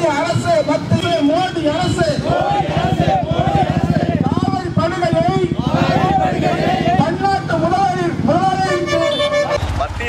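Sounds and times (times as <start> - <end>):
man shouting into a microphone: 0.0 - 9.6
low traffic rumble: 0.0 - 10.0.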